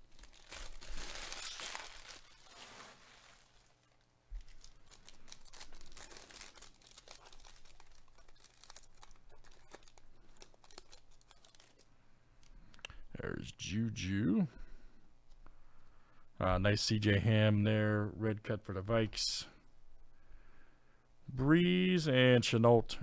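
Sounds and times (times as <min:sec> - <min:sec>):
foil wrapper crinkling and tearing: 0:00.0 - 0:11.9.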